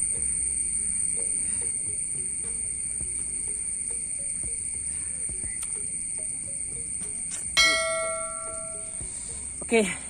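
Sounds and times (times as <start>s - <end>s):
high insect drone: 0.0s - 10.0s
bright bell ding: 7.6s - 9.0s.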